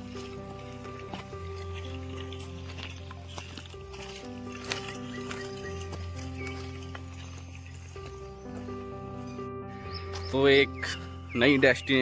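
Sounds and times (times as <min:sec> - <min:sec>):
footsteps on stony trail: 0:00.0 - 0:12.0
slow sustained chords music: 0:00.0 - 0:12.0.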